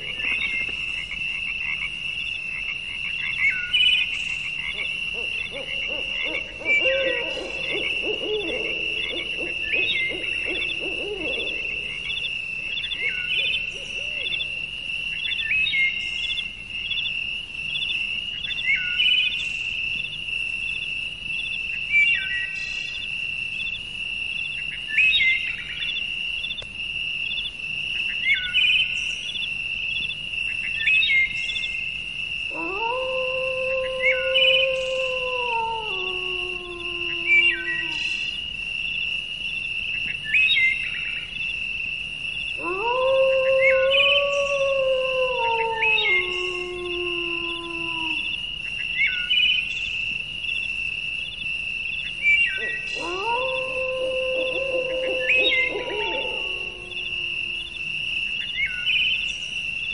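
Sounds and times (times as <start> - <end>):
lower warbling call: 4.8 - 14.6, 52.2 - 57.8.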